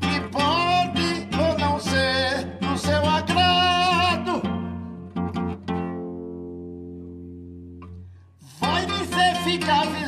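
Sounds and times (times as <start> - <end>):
person singing: 0.0 - 4.7, 8.4 - 10.0
guitar strumming: 0.0 - 10.0.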